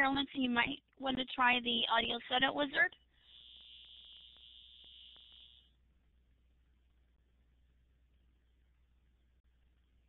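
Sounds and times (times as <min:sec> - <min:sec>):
faint ticks: 0:02.9 - 0:05.8
high-pitched electronic tone: 0:03.3 - 0:05.7.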